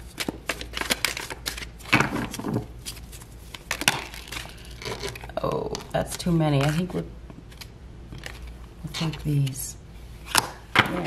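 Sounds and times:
cards being shuffled: 0:00.0 - 0:09.6.

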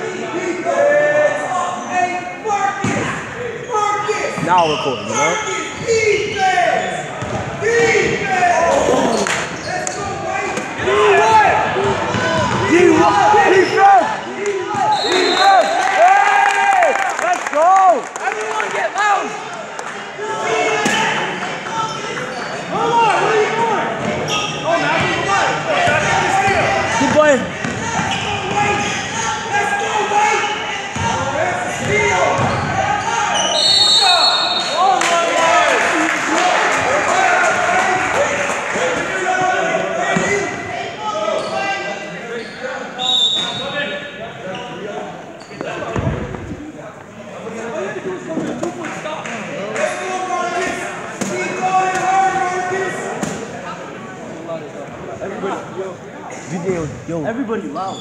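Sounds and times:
spectators' voices: 0:00.0 - 0:58.0
sneakers squeaking: 0:02.8 - 0:14.0, 0:20.8 - 0:22.8, 0:24.0 - 0:25.3, 0:25.9 - 0:29.1, 0:30.2 - 0:35.0, 0:41.2 - 0:46.7
whistle blast: 0:14.9 - 0:15.9, 0:33.3 - 0:34.8, 0:43.0 - 0:43.9.

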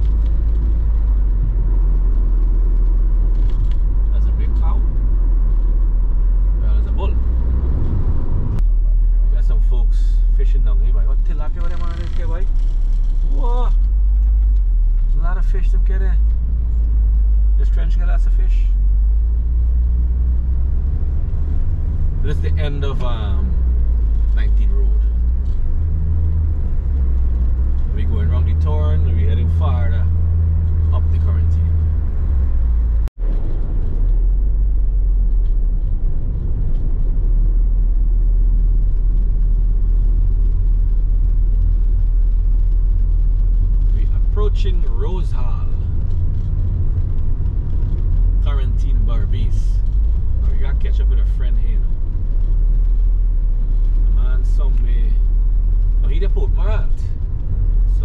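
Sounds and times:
road and engine rumble in car: 0:00.0 - 0:58.0.

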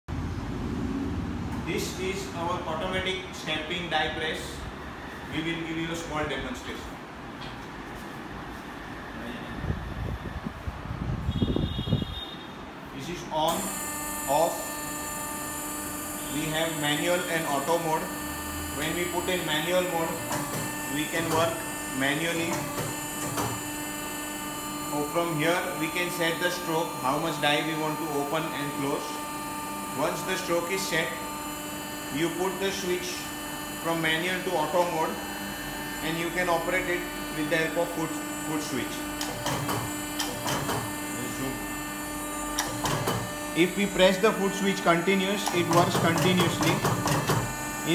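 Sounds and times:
machine electrical hum: 0:00.1 - 0:47.9
thin high whine: 0:13.4 - 0:47.9
sharp machine clicks: 0:45.3 - 0:47.5.

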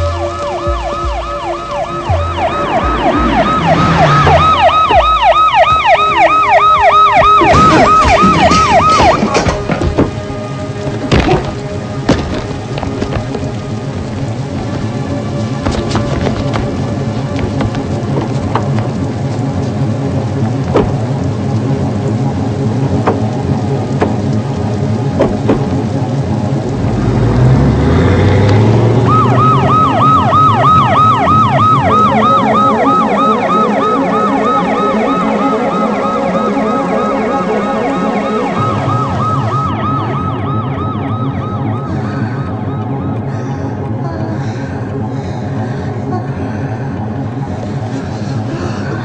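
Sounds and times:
siren whooping: 0:00.0 - 0:10.8, 0:27.8 - 0:43.8
low rising rumble: 0:00.0 - 0:49.0.

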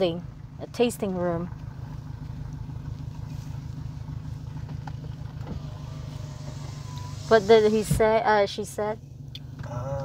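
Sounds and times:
car engine and road rumble: 0:00.0 - 0:10.0
faint thin whine: 0:05.4 - 0:08.2.

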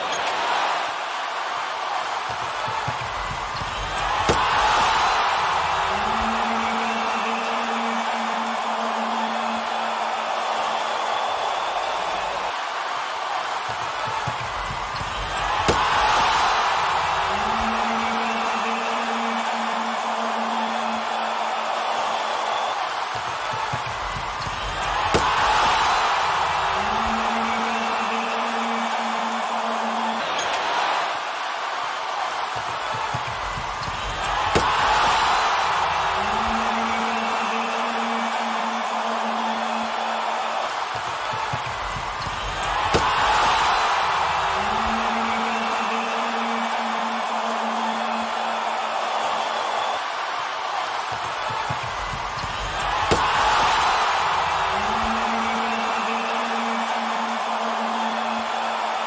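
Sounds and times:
arena crowd noise: 0:00.0 - 0:59.0
crowd cheering: 0:00.0 - 0:59.0.

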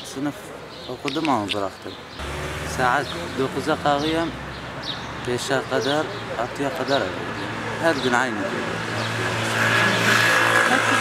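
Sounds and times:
road noise: 0:00.0 - 0:11.0
vehicle engine hum: 0:02.2 - 0:05.4, 0:06.0 - 0:11.0.

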